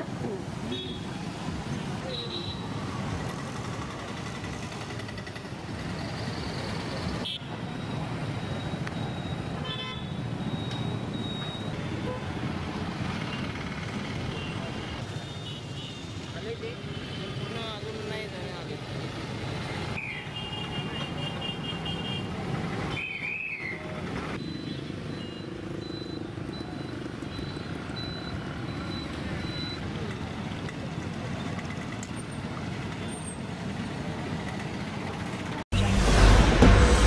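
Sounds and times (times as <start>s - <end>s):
street traffic: 0.0s - 37.0s
faint high beep: 10.4s - 11.9s, 24.4s - 29.8s.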